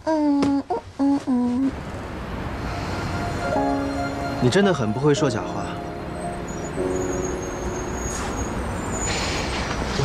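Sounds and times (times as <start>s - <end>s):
distant city traffic rumble: 0.0s - 10.0s
soft music of held notes: 2.7s - 8.6s.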